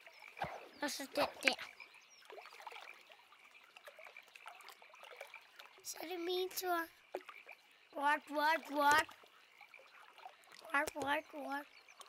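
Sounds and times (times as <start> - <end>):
water trickling: 0.0 - 12.0.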